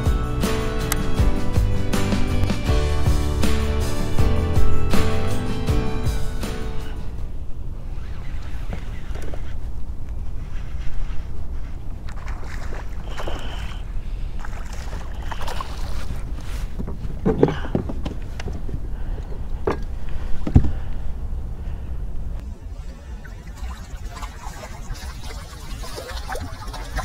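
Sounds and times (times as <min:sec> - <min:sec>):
wind rumbling on microphone: 0:07.0 - 0:27.0.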